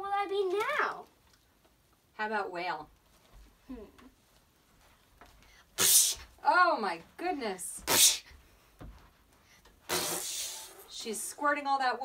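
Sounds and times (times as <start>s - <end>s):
child blowing a hissing sound: 5.8s - 6.3s, 7.9s - 8.3s, 9.9s - 10.9s.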